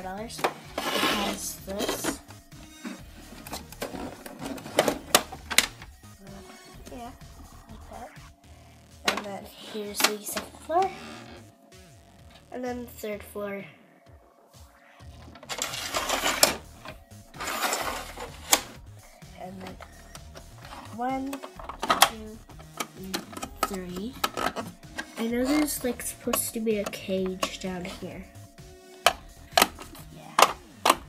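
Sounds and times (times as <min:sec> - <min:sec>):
plastic toy rattling and scraping: 0:00.3 - 0:02.2, 0:03.2 - 0:05.7, 0:15.2 - 0:18.8, 0:20.5 - 0:28.1.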